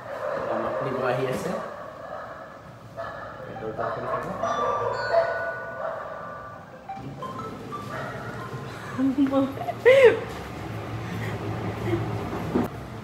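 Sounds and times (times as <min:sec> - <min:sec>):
music: 0:06.8 - 0:09.0.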